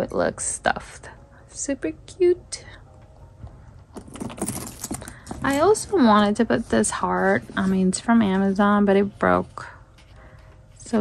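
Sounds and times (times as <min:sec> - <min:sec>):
metal chain strap jingling: 0:04.0 - 0:05.9.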